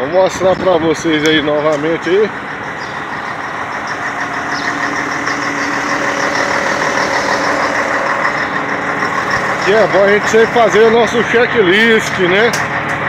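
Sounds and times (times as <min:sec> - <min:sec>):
truck diesel engine idling: 0:00.0 - 0:13.0.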